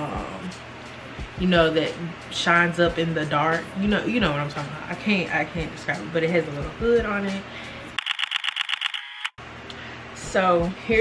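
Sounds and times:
camera shutter clicks: 8.0s - 9.4s.

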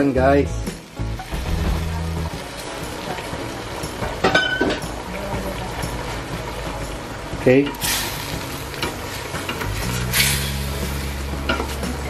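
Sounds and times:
chicken sizzling in a stockpot: 0.0s - 12.0s.

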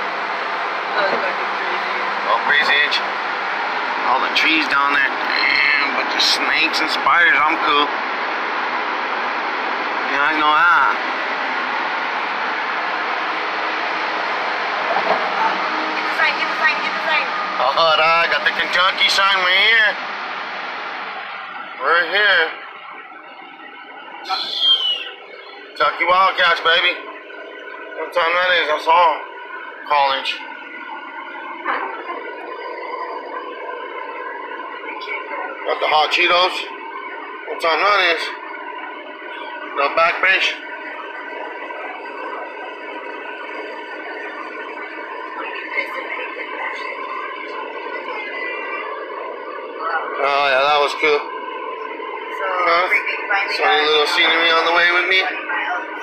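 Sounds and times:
road and wind noise in vehicle: 0.0s - 24.4s
road and engine noise in cab: 0.0s - 56.0s.

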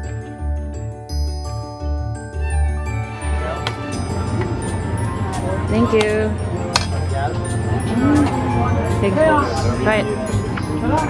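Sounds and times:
background music: 0.0s - 11.0s
voices: 2.8s - 11.0s.

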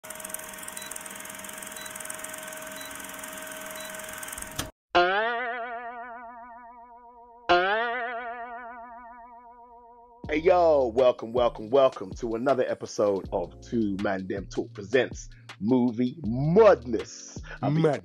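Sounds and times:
cartoon boing spring effect: 5.0s - 10.1s.

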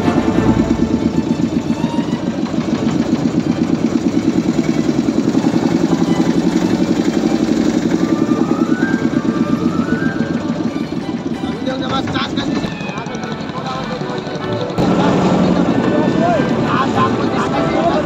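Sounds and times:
music playing: 0.0s - 3.7s, 4.8s - 18.0s
boat engine running: 0.0s - 18.0s.

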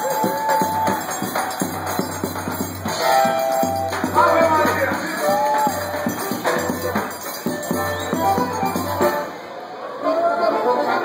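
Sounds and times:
drum beat: 0.0s - 9.3s
light metallic percussion: 0.0s - 9.4s
accordion playing: 2.8s - 9.4s.

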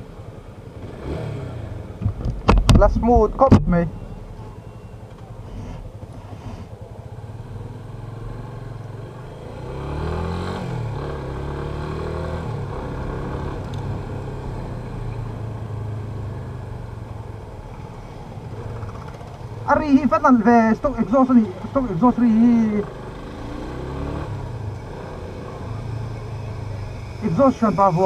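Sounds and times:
motorcycle engine revving: 0.7s - 4.6s, 7.1s - 28.0s.

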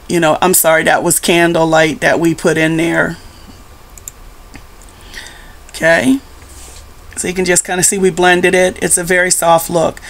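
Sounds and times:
low steady hum: 0.0s - 10.0s
faint clicks: 3.9s - 5.0s.

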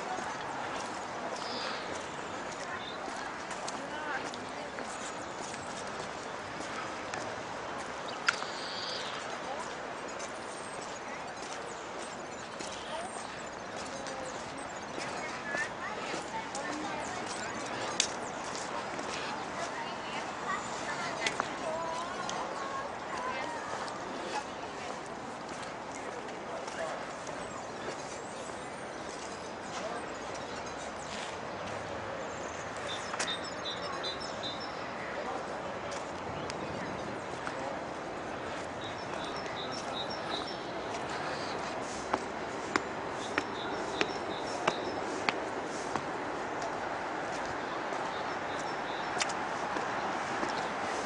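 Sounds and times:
footsteps on paved path: 0.0s - 51.0s
people's voices: 0.0s - 51.0s.

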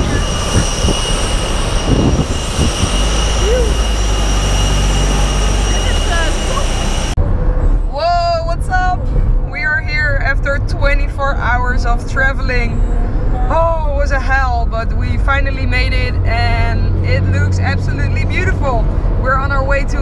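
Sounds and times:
voices: 0.0s - 2.0s, 3.3s - 7.2s
jet engine whine: 0.0s - 7.9s
low hum: 0.0s - 19.4s.

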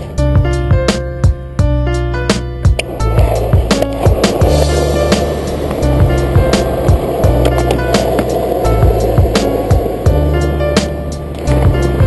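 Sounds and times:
background music with steady beat: 0.0s - 12.0s
skateboard wheels rolling on concrete: 0.0s - 12.0s.

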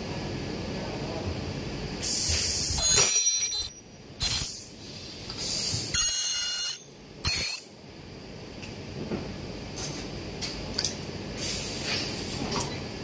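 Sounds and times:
welding machine hissing bursts: 2.0s - 3.0s, 4.2s - 7.6s.

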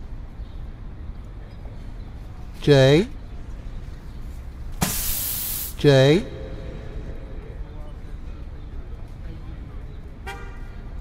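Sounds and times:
cartoon spray hiss: 4.8s - 5.9s.

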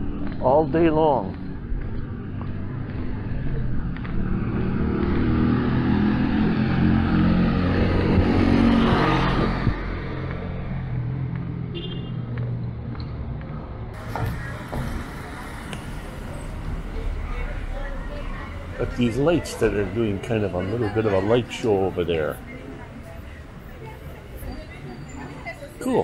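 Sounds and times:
street background: 0.0s - 26.0s
car driving past: 1.8s - 21.2s.

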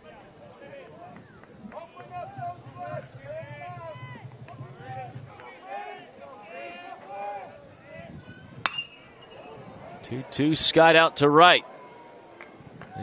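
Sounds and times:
faint crowd voices: 0.0s - 13.0s
metal bat hitting ball: 8.6s - 9.1s.

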